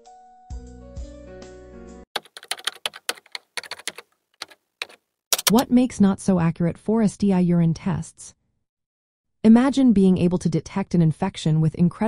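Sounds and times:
computer keyboard clicks: 2.2s - 5.7s.

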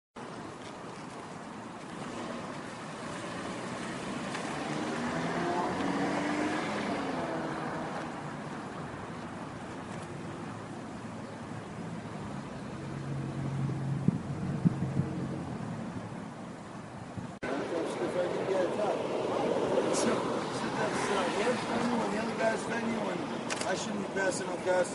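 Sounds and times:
low engine hum: 0.2s - 21.9s
traffic rushing by: 0.2s - 24.9s
sharp clicks: 23.5s - 23.8s.

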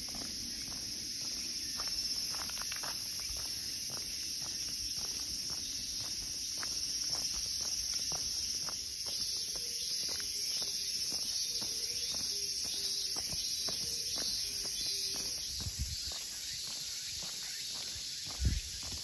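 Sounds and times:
cicadas droning: 0.0s - 19.0s
footsteps on gritty path: 0.0s - 19.0s.

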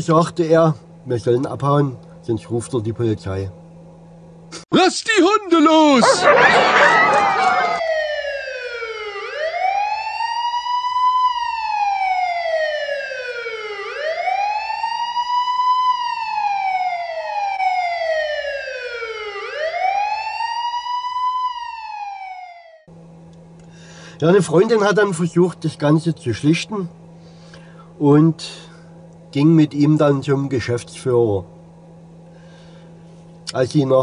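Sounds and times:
police wail siren: 6.0s - 22.9s.

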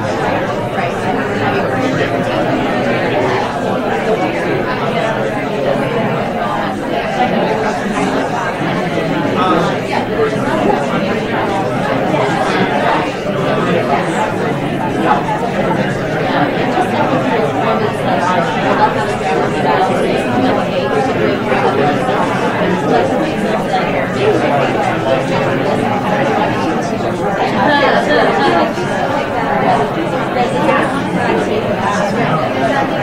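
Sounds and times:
hubbub of overlapping voices: 0.0s - 33.0s.

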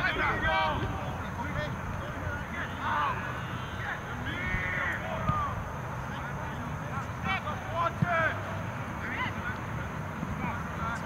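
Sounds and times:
distant players shouting: 0.0s - 11.0s.

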